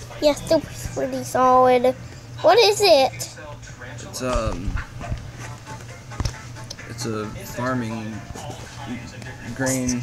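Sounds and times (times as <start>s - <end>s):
soft background music: 0.0s - 10.0s
steady low hum: 0.0s - 10.0s.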